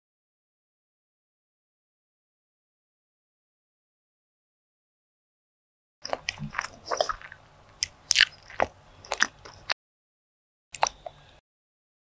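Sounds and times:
biting and chewing: 0:06.0 - 0:09.8, 0:10.8 - 0:11.4
crackly mouth clicks and smacks: 0:06.1 - 0:09.8, 0:10.8 - 0:11.3.

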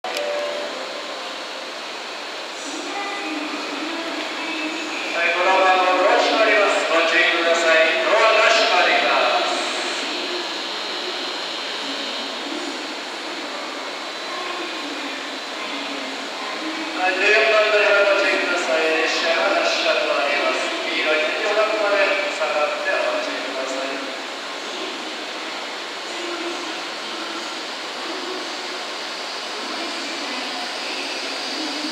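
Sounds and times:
train pulling into platform: 0:00.0 - 0:31.9.

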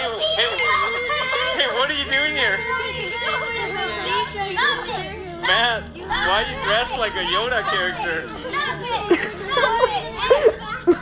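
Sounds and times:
young people laughing and jeering: 0:00.0 - 0:11.0.

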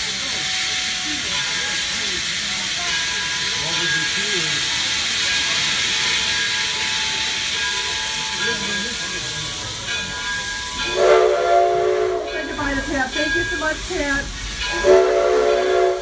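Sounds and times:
steam hissing: 0:00.0 - 0:16.0
steam whistle blast: 0:10.8 - 0:12.6, 0:14.6 - 0:16.0.

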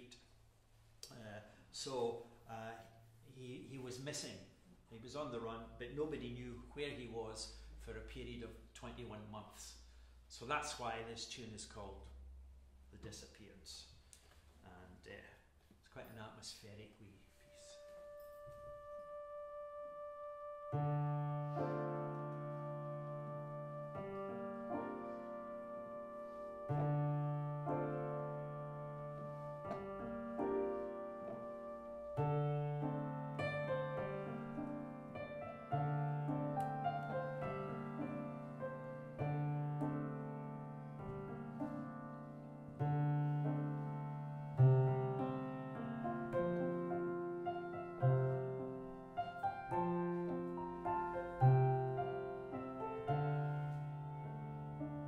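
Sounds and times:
electronic keyboard chords: 0:17.8 - 0:55.0.

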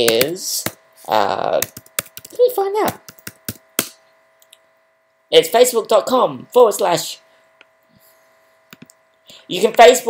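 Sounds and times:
faint steady hum: 0:00.0 - 0:10.0
computer keyboard keystrokes: 0:01.6 - 0:03.6.

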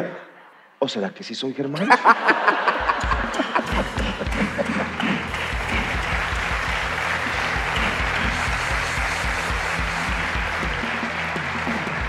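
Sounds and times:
audience applauding: 0:02.1 - 0:12.0
background music with low beat: 0:02.6 - 0:12.0.

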